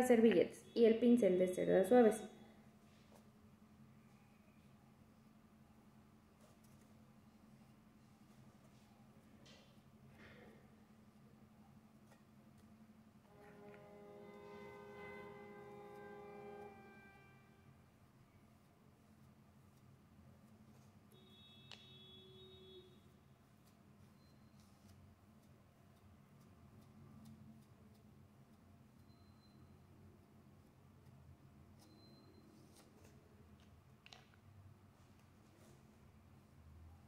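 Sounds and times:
steady low hum: 0:02.2 - 0:21.6
faint chord-like tone: 0:13.3 - 0:17.9.

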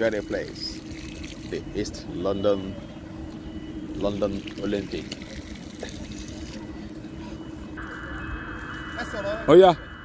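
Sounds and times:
faint steady hum: 0:00.0 - 0:10.0
low rumble: 0:07.7 - 0:10.0.

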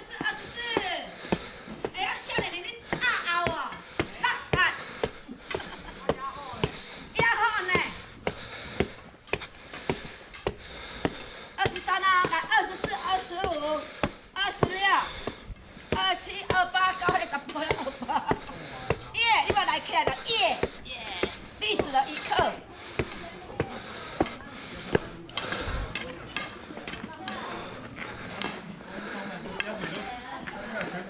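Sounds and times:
people talking: 0:00.0 - 0:01.2, 0:01.9 - 0:08.0, 0:11.6 - 0:15.3, 0:15.9 - 0:31.0
footsteps on stone: 0:00.0 - 0:31.0.

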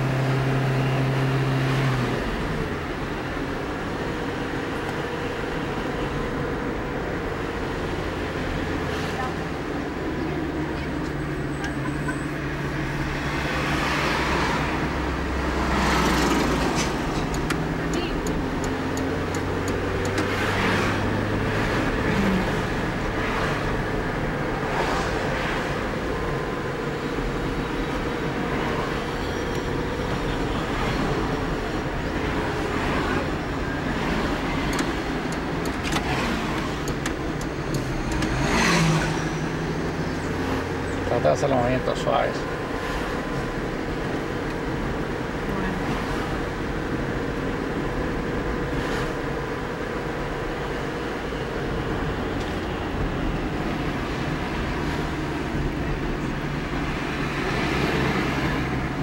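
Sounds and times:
car engine and road noise: 0:00.0 - 0:59.0.

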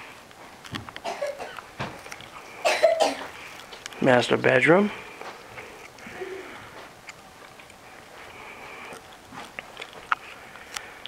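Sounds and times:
person coughing: 0:01.0 - 0:01.6, 0:02.6 - 0:03.3.

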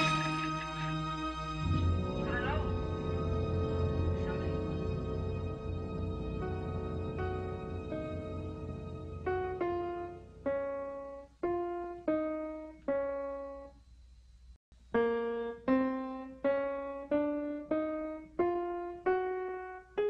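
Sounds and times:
slow piano melody: 0:00.0 - 0:13.8, 0:14.8 - 0:20.0.

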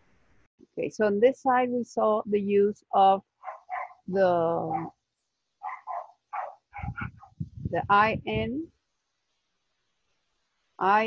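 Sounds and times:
dog barking: 0:03.4 - 0:04.0, 0:05.6 - 0:07.3.

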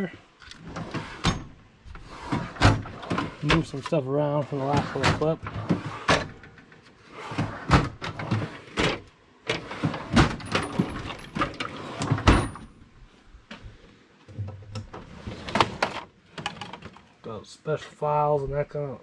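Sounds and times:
metal drawers sliding and clunking: 0:00.5 - 0:12.7, 0:14.3 - 0:17.0.

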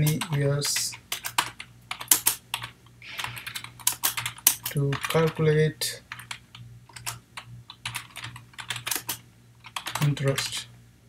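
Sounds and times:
typing on computer keyboard: 0:00.0 - 0:05.4, 0:06.1 - 0:10.6.

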